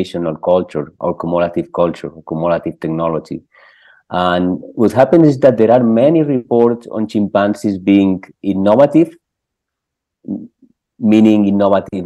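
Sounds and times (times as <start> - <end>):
man talking: 0.0 - 9.2, 10.2 - 12.0.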